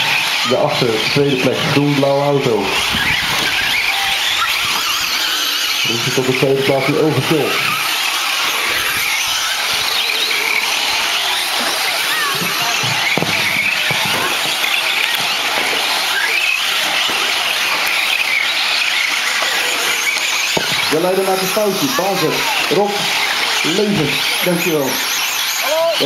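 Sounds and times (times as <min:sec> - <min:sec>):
rc truck motors whining: 0:00.0 - 0:26.0.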